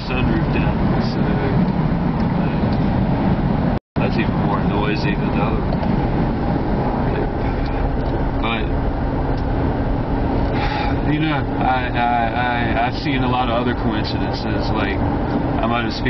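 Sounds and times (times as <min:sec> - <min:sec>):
car road and wind noise: 0:00.0 - 0:16.0.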